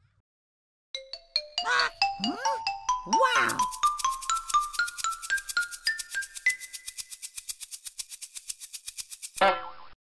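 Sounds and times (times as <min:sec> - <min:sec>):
fast even ticking: 0:03.0 - 0:09.4.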